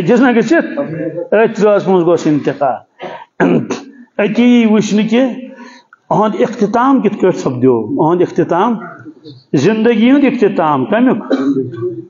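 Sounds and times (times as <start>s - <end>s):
man speaking: 0.0s - 12.0s
man clearing throat: 3.0s - 4.0s, 11.2s - 12.0s.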